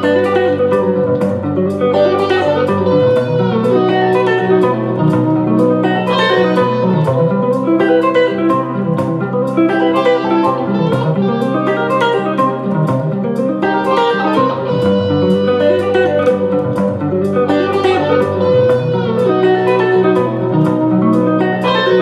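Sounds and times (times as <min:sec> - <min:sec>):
electric guitar rapid arpeggios: 0:00.0 - 0:22.0
looped guitar chords and melody: 0:00.0 - 0:22.0.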